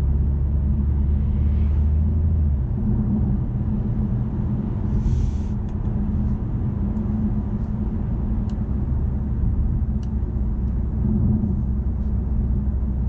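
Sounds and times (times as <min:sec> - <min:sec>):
low engine drone: 0:00.0 - 0:13.0
tyre and road noise: 0:00.0 - 0:13.0.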